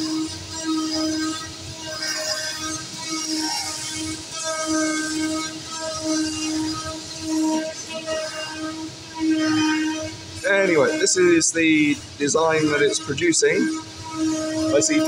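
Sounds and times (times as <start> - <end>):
cutter buzzing tone: 0.0 - 15.0
steady machine noise: 0.0 - 15.0.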